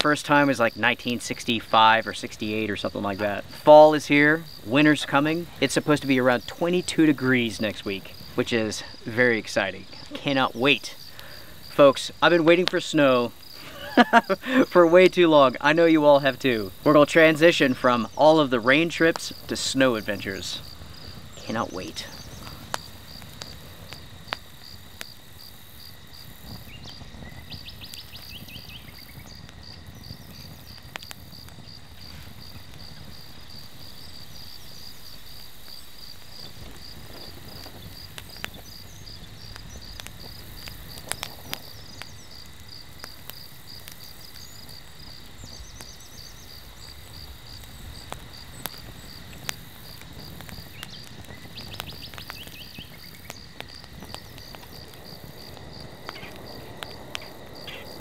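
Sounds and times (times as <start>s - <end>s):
insects chirping: 0.0s - 58.0s
wood fire popping and crackling: 0.0s - 58.0s.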